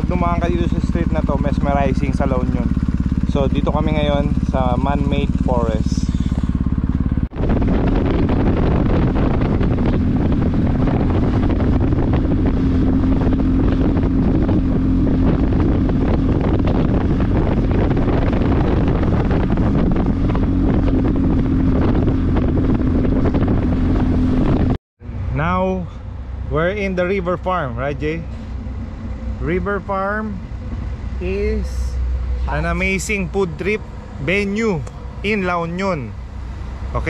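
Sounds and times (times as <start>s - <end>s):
wind noise on microphone: 0.0s - 25.3s
motorcycle engine running: 0.0s - 37.0s.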